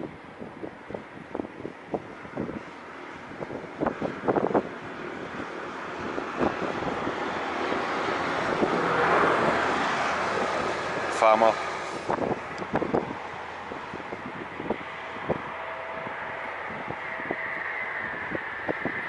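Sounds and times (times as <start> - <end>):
wind buffeting microphone: 0.0 - 19.0
tractor engine approaching: 2.6 - 19.0.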